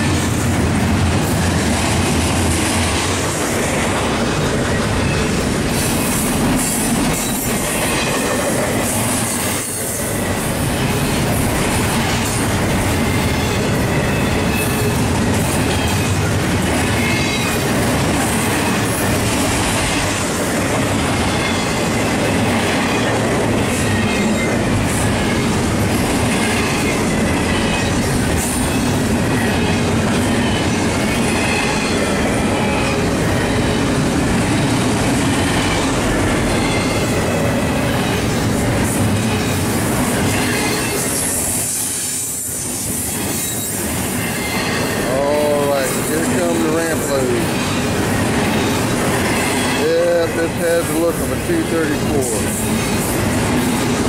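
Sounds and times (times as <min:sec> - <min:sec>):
train wheels rumbling on rails: 0:00.0 - 0:54.0
high wheel squeal: 0:12.3 - 0:16.2, 0:36.5 - 0:37.2, 0:40.2 - 0:50.2.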